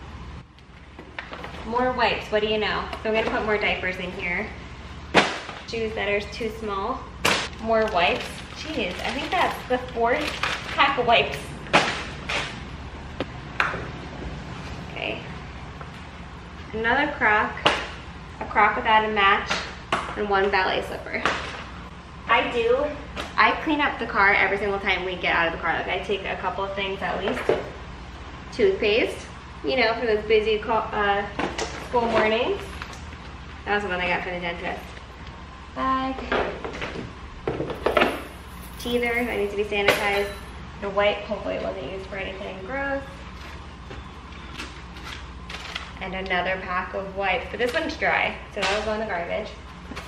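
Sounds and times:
items rustling and knocking: 0.9 - 1.7, 7.3 - 12.6, 36.2 - 39.0
plastic bag rustling: 7.6 - 11.5.

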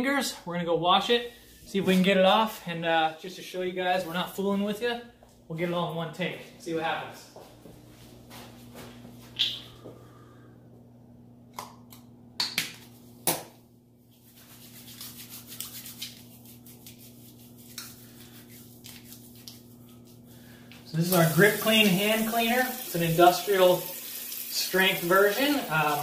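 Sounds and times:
steady low hum: 0.0 - 21.1
hands rubbing with gritty soap: 14.1 - 20.8.

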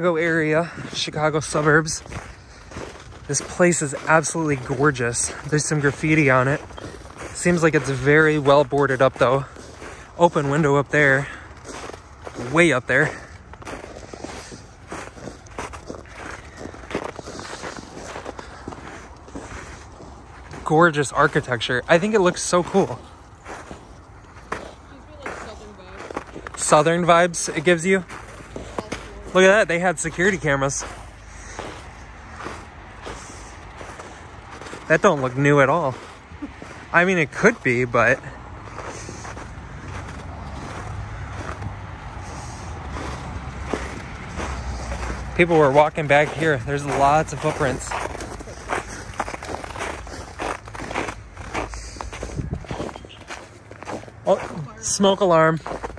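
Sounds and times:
footsteps on snow: 0.0 - 55.9.

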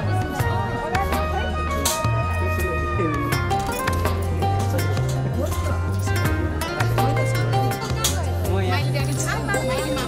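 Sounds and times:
song with bass and percussion: 0.0 - 10.0.

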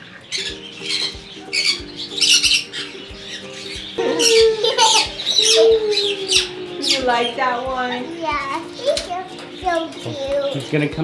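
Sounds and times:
background music with steady beat: 0.0 - 11.0
parrot squawking harshly: 0.4 - 7.4.

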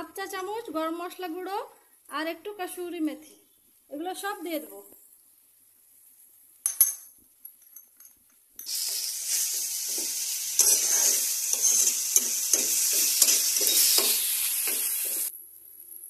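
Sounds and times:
onions sizzling in hot oil: 8.6 - 15.4
metal spatula scraping a pan: 8.7 - 15.3.

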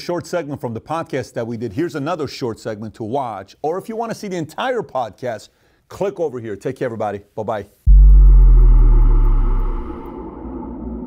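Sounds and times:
deep cinematic boom: 7.9 - 11.0
faint airy drone: 7.9 - 11.0.

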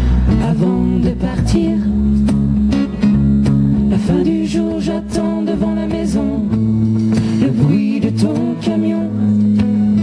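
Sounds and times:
bass and drums: 0.0 - 10.0
electric guitar: 0.0 - 10.0
strummed acoustic guitar: 0.0 - 10.0.

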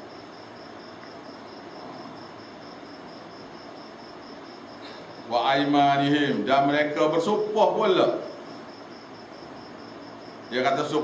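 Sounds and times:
cricket chirping: 0.0 - 11.0
room hiss: 0.0 - 11.0.

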